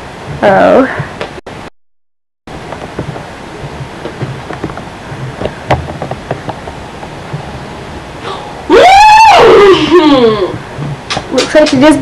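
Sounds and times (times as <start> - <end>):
soft taps and knocks: 2.6 - 7.5.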